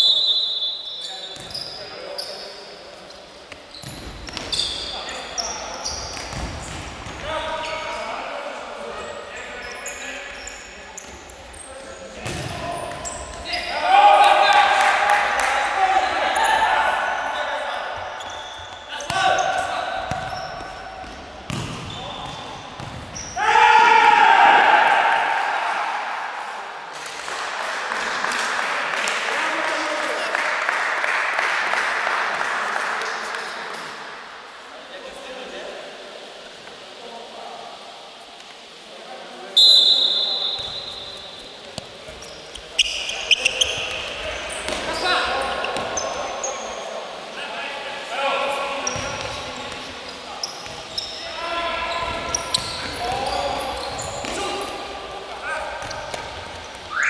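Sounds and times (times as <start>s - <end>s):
ball kicked and bouncing: 12.2s - 12.5s, 21.0s - 21.9s
players shouting: 13.5s - 17.4s, 23.3s - 26.3s.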